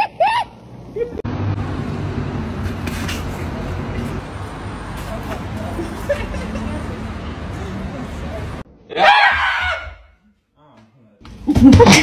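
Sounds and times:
vehicle rumble and road noise: 0.0 - 8.8.

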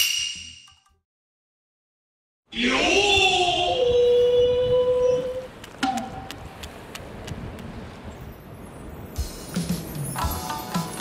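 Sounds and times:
background noise: 2.5 - 11.0.

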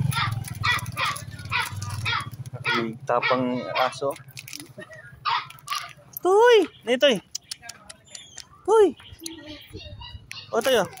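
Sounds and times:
dog barking: 0.1 - 4.2, 5.2 - 5.9.

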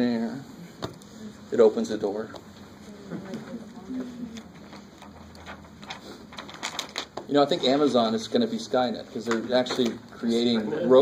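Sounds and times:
low steady hum: 0.0 - 7.0.

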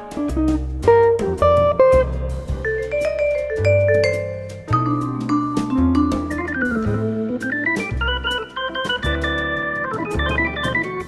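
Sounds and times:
jazz lead line: 0.0 - 11.0
low bass notes: 0.0 - 11.0.

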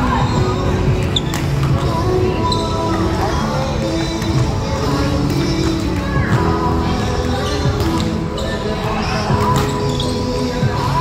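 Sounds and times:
background music: 0.0 - 11.0
players' voices: 0.0 - 11.0.

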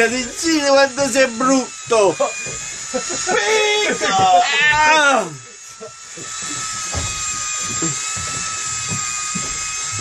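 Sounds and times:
electric fishing reel whining: 0.0 - 10.0.

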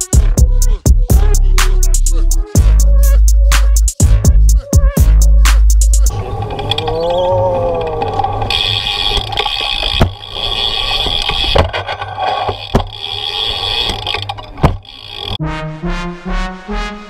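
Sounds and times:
bike tyre and frame rattle: 6.4 - 15.4
bike knocking over ramps: 9.9 - 10.3, 12.6 - 13.1, 14.6 - 15.1.

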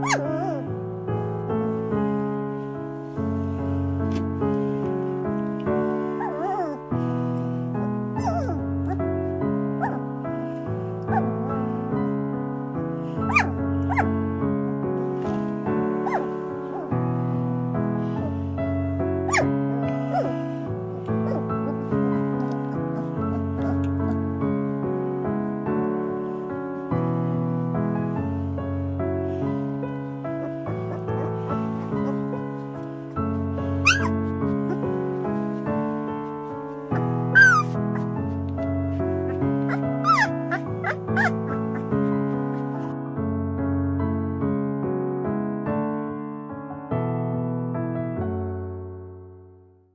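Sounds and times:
puppy whimpering: 0.0 - 0.8, 6.1 - 6.9, 8.2 - 9.1, 9.8 - 10.1, 11.1 - 11.7, 13.2 - 14.2, 15.3 - 17.0, 19.3 - 24.3, 30.4 - 35.9, 36.9 - 42.8
piano music: 0.0 - 49.8.

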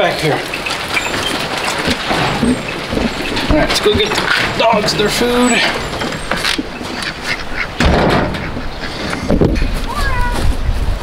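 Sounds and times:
ducks quacking: 0.2 - 10.0.

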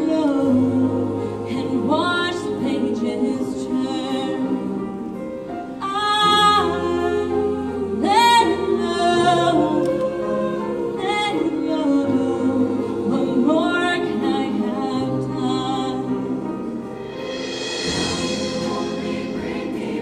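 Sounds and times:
woman singing lead into microphone: 0.0 - 4.9, 5.8 - 16.5
choir singing in harmony: 0.0 - 20.0.

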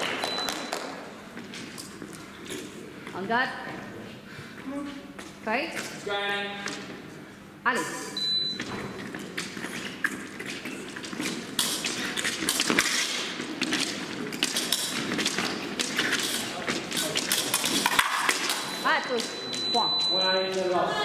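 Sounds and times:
fencing footwork and blade taps: 8.6 - 19.6.

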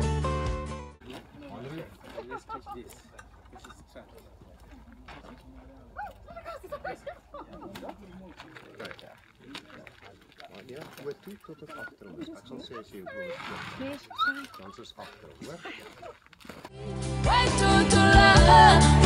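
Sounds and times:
people talking quietly: 1.0 - 16.2.

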